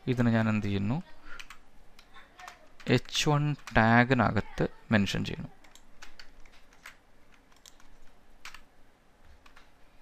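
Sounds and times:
keyboard keystrokes: 0:05.6 - 0:08.7.

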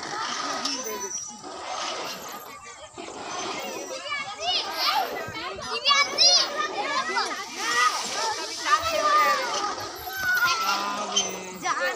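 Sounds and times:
children calling and shouting: 0:00.0 - 0:11.9.

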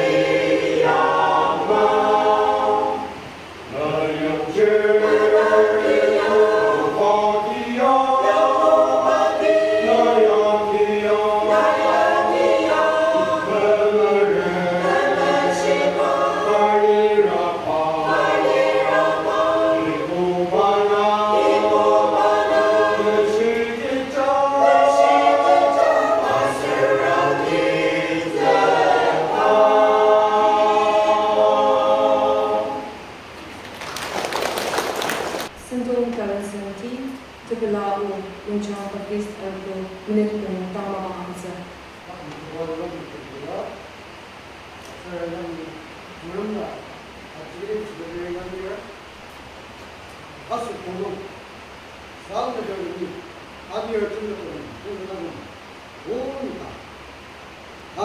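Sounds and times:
mixed choir singing: 0:00.0 - 0:33.2.

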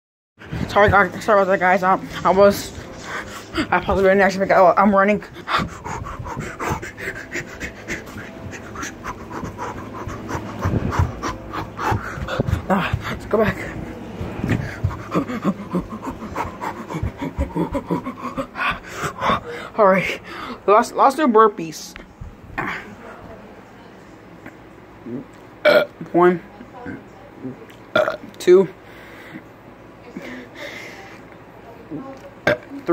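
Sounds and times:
person panting: 0:00.4 - 0:04.1, 0:05.1 - 0:20.7, 0:30.2 - 0:31.2
person burping: 0:25.1 - 0:25.9, 0:27.9 - 0:28.3.

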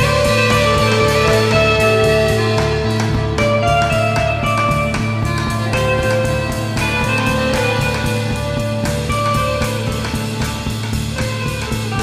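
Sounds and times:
psychedelic rock instrumental: 0:00.0 - 0:12.0.

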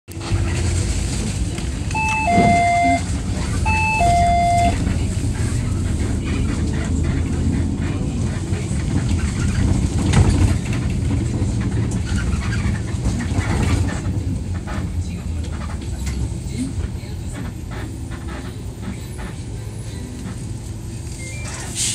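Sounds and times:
bus engine and road rumble: 0:00.1 - 0:21.9.

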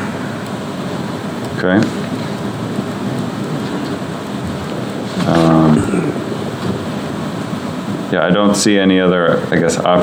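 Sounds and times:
steady rushing background noise: 0:00.0 - 0:10.0.

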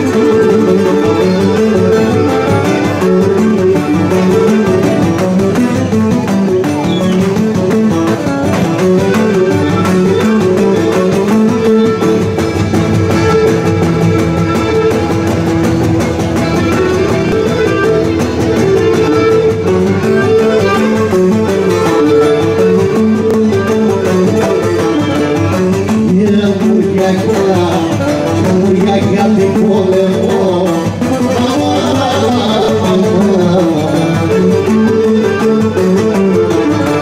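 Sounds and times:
bowed string melody: 0:00.0 - 0:37.0
strummed plucked strings: 0:00.0 - 0:37.0.

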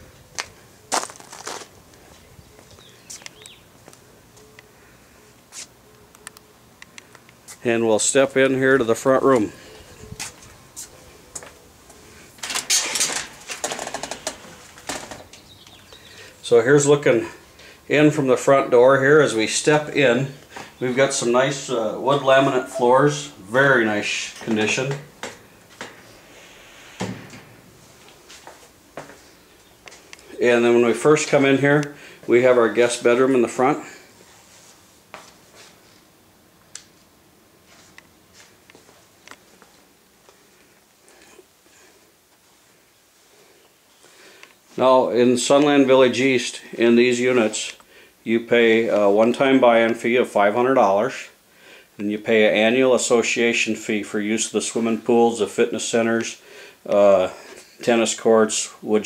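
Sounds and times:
footsteps scuffing on concrete: 0:00.3 - 0:04.6, 0:05.5 - 0:05.8, 0:10.2 - 0:12.0, 0:27.8 - 0:30.3, 0:34.2 - 0:35.9, 0:37.6 - 0:40.4.

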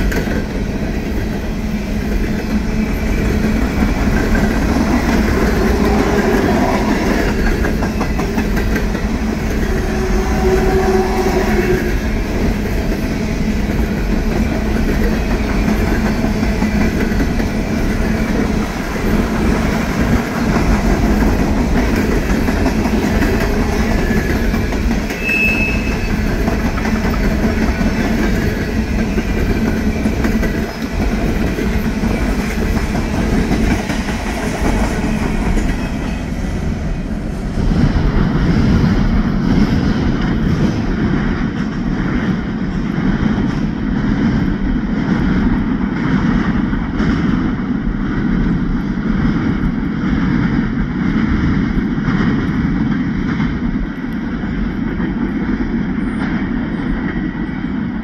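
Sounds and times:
wheels clacking over rail joints: 0:00.0 - 0:36.2
train wheels rumbling on rails: 0:00.0 - 0:58.0
train wheel squeals: 0:02.7 - 0:08.5, 0:09.4 - 0:12.0, 0:23.2 - 0:31.0, 0:34.6 - 0:36.5.

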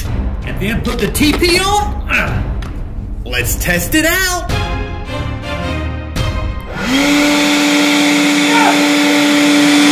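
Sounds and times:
background music: 0:00.0 - 0:09.9
leaf blower whine and air rush: 0:06.6 - 0:09.9.

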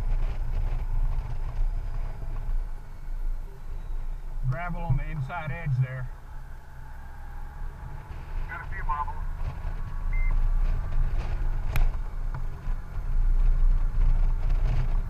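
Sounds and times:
motorcycle engine and wind rumble: 0:00.0 - 0:15.0.

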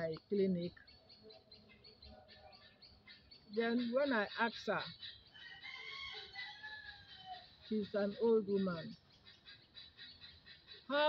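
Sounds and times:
faint rooster crowing: 0:05.3 - 0:07.6.

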